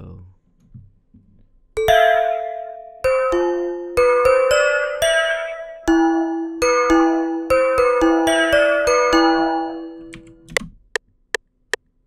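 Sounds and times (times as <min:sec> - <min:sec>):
synth bell notes ringing: 0:01.8 - 0:10.4.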